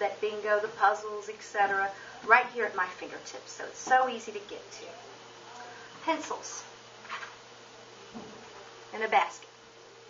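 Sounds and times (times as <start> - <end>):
faint electrical hum: 0.0 - 10.0.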